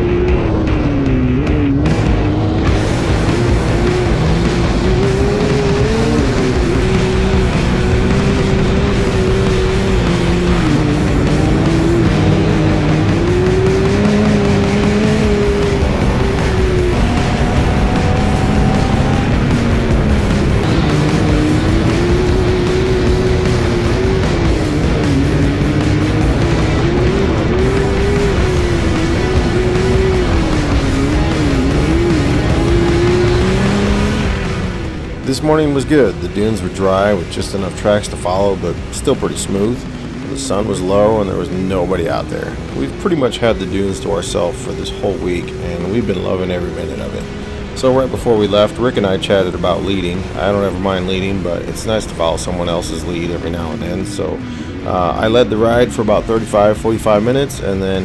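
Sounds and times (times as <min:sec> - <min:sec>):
background music: 0:00.0 - 0:58.0
engine revving: 0:00.0 - 0:58.0.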